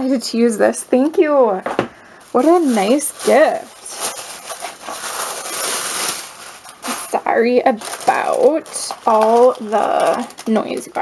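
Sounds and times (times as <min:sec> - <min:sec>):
tissue paper rustling: 0:02.2 - 0:11.0.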